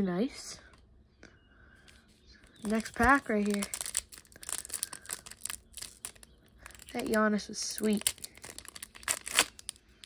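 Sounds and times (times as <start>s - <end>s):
foil wrapper crinkling and tearing: 2.6s - 10.0s.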